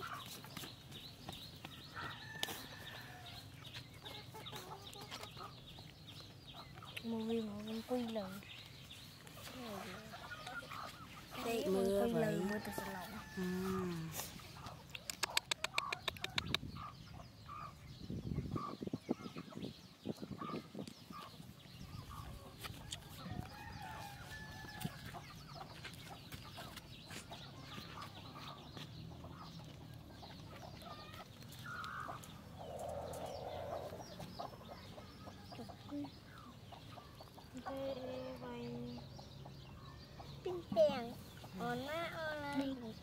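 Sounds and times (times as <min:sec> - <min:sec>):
chickens clucking: 0:00.0 - 0:43.0.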